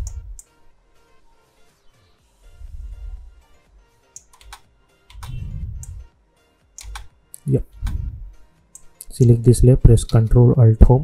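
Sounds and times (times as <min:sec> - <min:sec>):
keyboard and mouse clicks: 0:00.0 - 0:00.5, 0:04.1 - 0:06.1, 0:06.8 - 0:08.1, 0:08.7 - 0:09.4.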